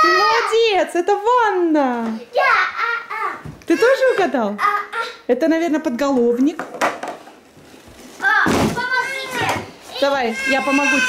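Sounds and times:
child calling out: 0:08.2 - 0:11.0.

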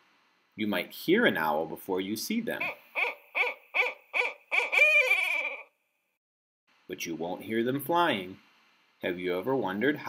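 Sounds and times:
owl hooting: 0:02.6 - 0:05.7.

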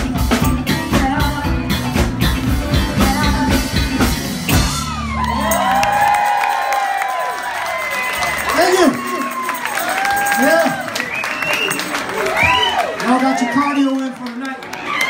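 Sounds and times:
live band playing: 0:00.0 - 0:14.1
crowd cheering and whooping: 0:04.5 - 0:15.0.

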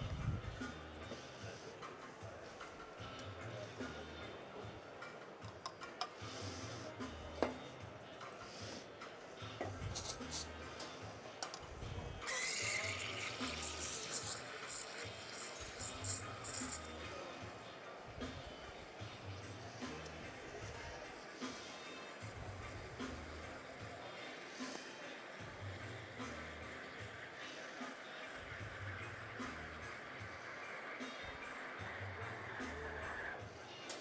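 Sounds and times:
background music with steady beat: 0:00.0 - 0:34.0
steam wand hissing: 0:06.2 - 0:07.2, 0:09.8 - 0:11.2, 0:12.2 - 0:17.6, 0:19.4 - 0:34.0
faint squealing tone: 0:12.2 - 0:13.8.

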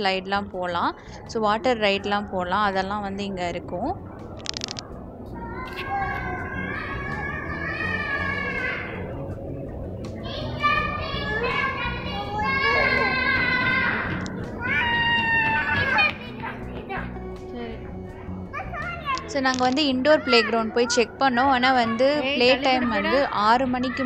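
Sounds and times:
music with steady low beat: 0:04.0 - 0:19.4.

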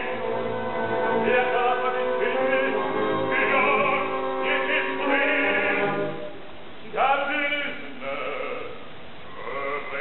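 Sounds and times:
operatic voice singing with vibrato: 0:00.0 - 0:06.3, 0:06.9 - 0:10.0.

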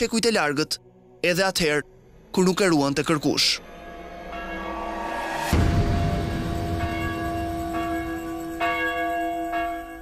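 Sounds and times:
church bell ringing: 0:02.6 - 0:10.0.

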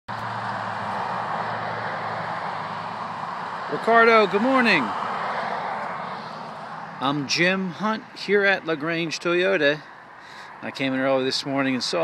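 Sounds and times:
even outdoor rush: 0:00.1 - 0:12.0.

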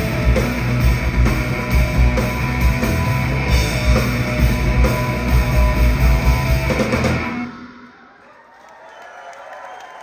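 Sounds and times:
rock band playing loudly: 0:00.0 - 0:07.9.

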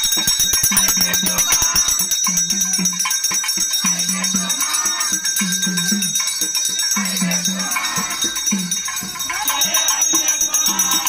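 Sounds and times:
brass hand bell ringing: 0:00.0 - 0:11.0
fast drum strokes: 0:00.0 - 0:11.0.

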